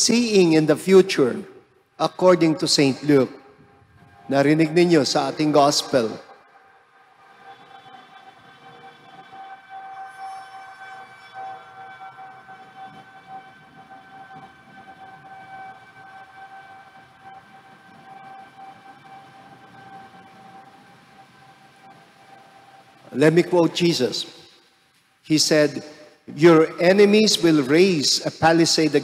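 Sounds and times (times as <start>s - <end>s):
faint steady pitched tone: 0.0s - 27.8s
low background noise: 0.0s - 29.0s.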